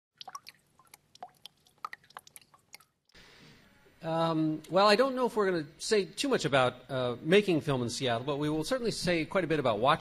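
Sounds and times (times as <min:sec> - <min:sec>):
low steady hiss: 0:00.2 - 0:10.0.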